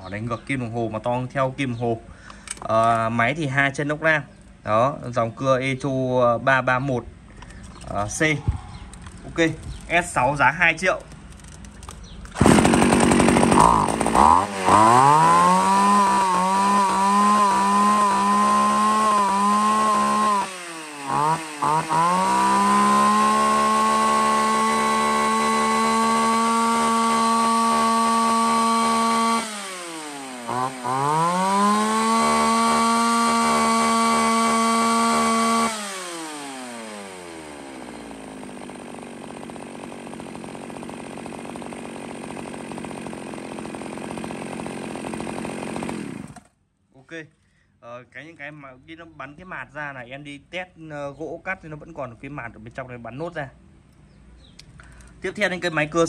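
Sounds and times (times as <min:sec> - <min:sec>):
chainsaw revving: 0:12.3 - 0:46.5.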